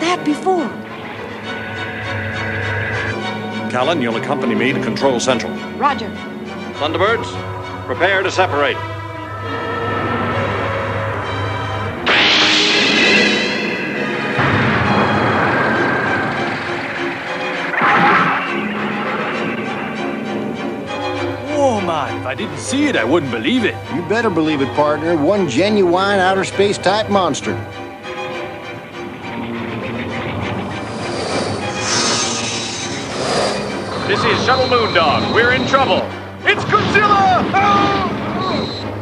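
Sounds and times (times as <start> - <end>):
spacecraft thruster jet rushing: 7.9 - 21.5
screeching hiss sound effect: 31.8 - 33.6.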